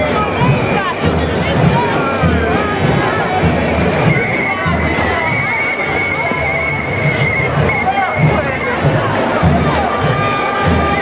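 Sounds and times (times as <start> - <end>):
crowd chatter: 0.0 - 11.0
samba band drumming: 0.0 - 11.0
whistle long high note: 4.0 - 8.9.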